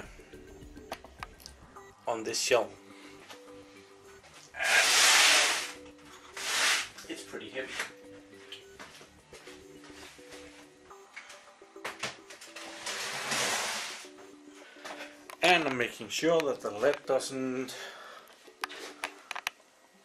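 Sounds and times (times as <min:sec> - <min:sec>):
clothing brushing microphone: 0:04.6 - 0:07.1, 0:12.9 - 0:14.0.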